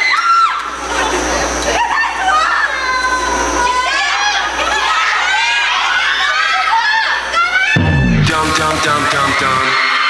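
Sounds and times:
audience screaming and cheering: 0.0 - 0.8, 1.7 - 10.0.

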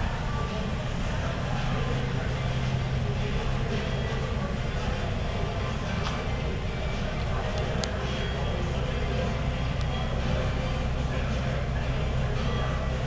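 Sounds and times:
faint distant voices: 0.0 - 13.0
low hum: 0.0 - 13.0.

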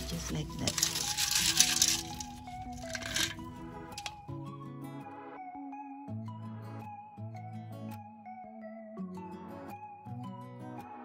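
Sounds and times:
soil shaken through metal sieve: 0.0 - 3.4, 4.0 - 4.2
background music: 0.0 - 11.0.

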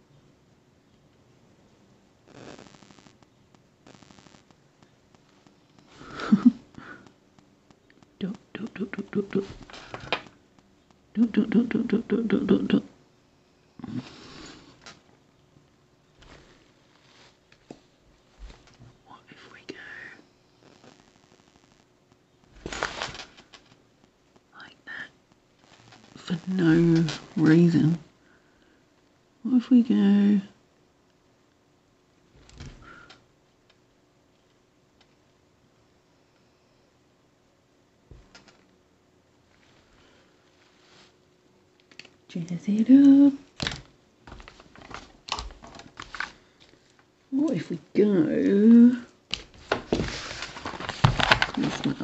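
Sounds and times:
person speaking softly: 8.2 - 9.7, 11.1 - 13.0, 19.0 - 20.3, 25.9 - 28.1, 42.3 - 43.4, 51.6 - 52.0.

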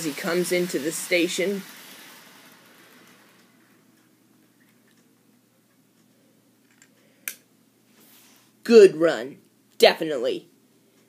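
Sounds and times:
model locomotive running: 0.0 - 4.2.

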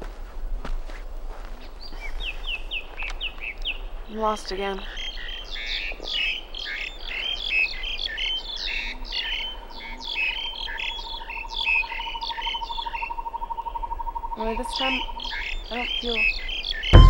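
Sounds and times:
birds chirping: 1.4 - 17.0.

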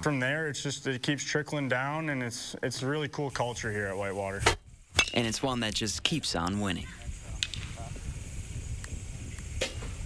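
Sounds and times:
wind rumble on microphone: 3.6 - 10.0.

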